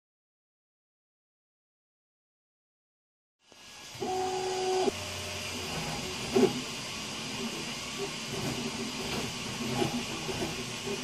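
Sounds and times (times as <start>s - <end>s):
fan hiss: 3.4s - 11.0s
stepper motor whine: 3.5s - 11.0s.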